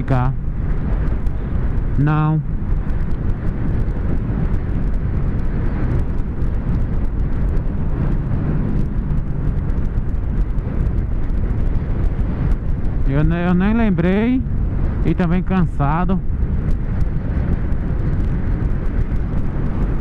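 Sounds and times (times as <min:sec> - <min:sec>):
motorcycle engine drone: 0:00.0 - 0:20.0
wind rushing over microphone: 0:00.0 - 0:20.0.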